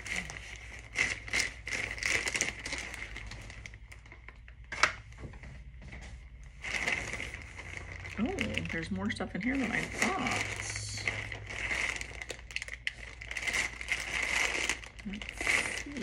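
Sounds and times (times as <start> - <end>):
plastic packaging crinkling: 0.0 - 5.2, 6.4 - 16.0.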